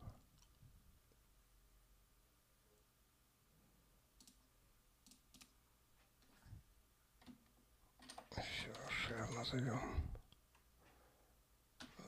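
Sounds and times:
faint computer clicks: 0:04.2 - 0:05.6
person speaking: 0:08.3 - 0:10.3.

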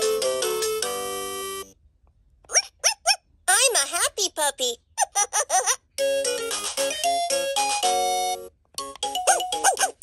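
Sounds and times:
toy chirpy voice sounds: 0:02.4 - 0:07.0, 0:08.9 - 0:10.0
electronic toy jingle: 0:06.0 - 0:10.0.

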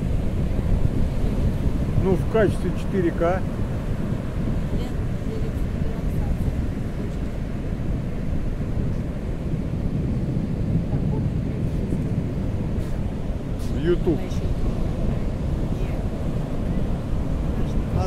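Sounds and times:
waves breaking on a beach: 0:00.0 - 0:18.0
wind buffeting the microphone: 0:00.0 - 0:18.0.

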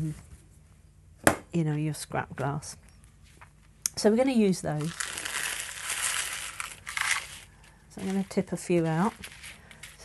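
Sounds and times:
glass shards pouring onto paper: 0:04.8 - 0:10.0.

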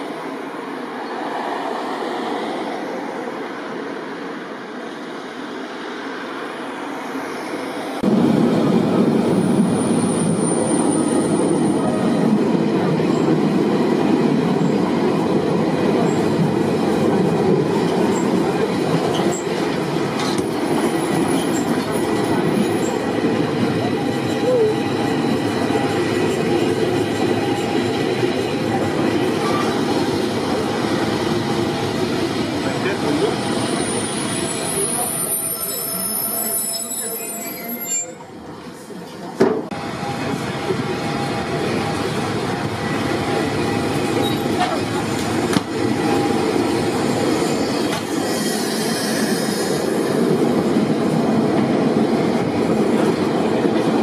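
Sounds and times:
train wheels rumbling on rails: 0:08.0 - 0:36.5, 0:38.4 - 0:54.0.

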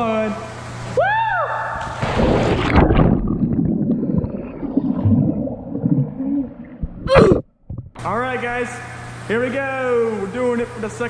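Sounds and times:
person jumping into pool splash: 0:01.8 - 0:07.4
water splashing rush: 0:02.0 - 0:07.4
muffled underwater gurgling: 0:02.6 - 0:08.0.

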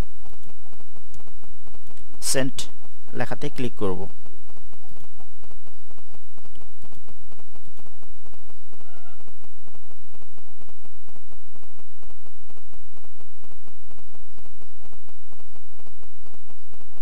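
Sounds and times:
low hum: 0:00.0 - 0:17.0.

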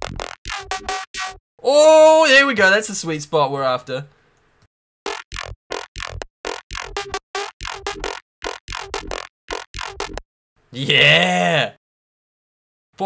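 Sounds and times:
synthesized bass stabs: 0:00.0 - 0:01.4, 0:05.1 - 0:10.2.

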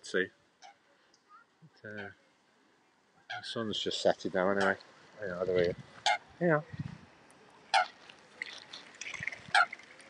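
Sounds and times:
swans and geese calling: 0:00.5 - 0:02.2, 0:03.2 - 0:06.4, 0:07.4 - 0:10.0.

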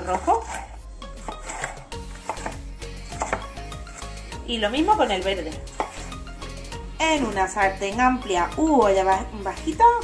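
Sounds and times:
knife cutting on wooden board: 0:00.0 - 0:06.7
background music: 0:00.0 - 0:10.0.

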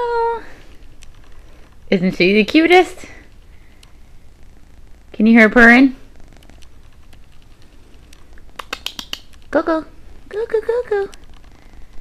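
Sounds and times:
cat purring: 0:00.0 - 0:12.0
sharp clicks and rustles: 0:00.5 - 0:05.2, 0:06.1 - 0:12.0.

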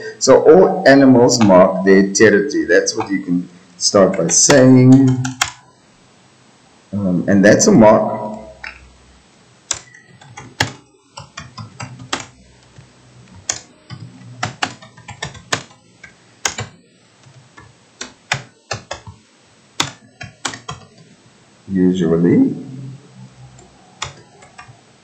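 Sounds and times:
man talking: 0:00.0 - 0:05.4, 0:06.9 - 0:08.7, 0:21.7 - 0:23.0
typing on computer keyboard: 0:04.1 - 0:05.6, 0:09.7 - 0:19.2, 0:19.8 - 0:21.1, 0:23.6 - 0:24.8.

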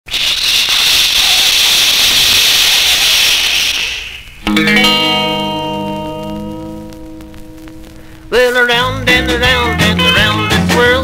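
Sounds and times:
vinyl surface hiss and crackle: 0:00.1 - 0:11.0.

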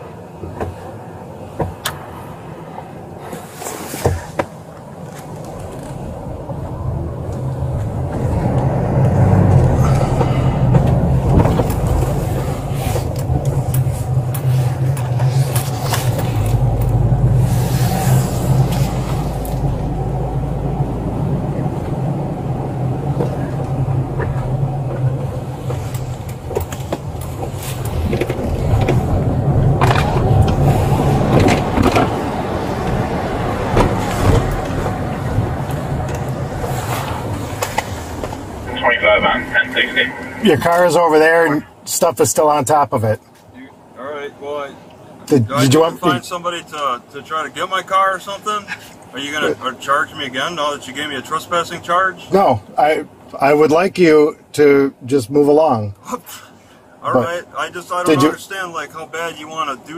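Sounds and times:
car engine and road noise hum: 0:00.0 - 0:59.9.

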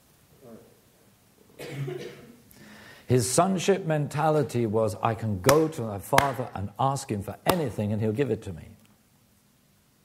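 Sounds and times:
man coughing: 0:01.6 - 0:02.4.

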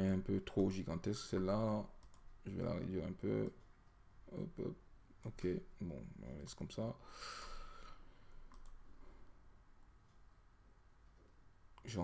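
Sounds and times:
computer mouse clicks: 0:02.0 - 0:02.4, 0:08.3 - 0:08.8.

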